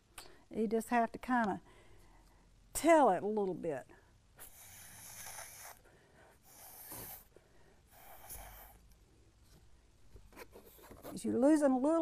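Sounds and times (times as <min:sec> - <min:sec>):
breath puffs through a straw: 0:04.4 - 0:07.3, 0:07.9 - 0:08.8.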